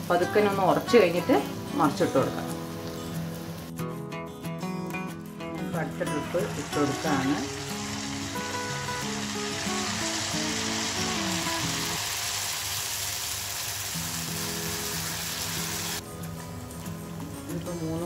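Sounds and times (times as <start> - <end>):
batter sizzling in hot oil: 6.3 - 16.0.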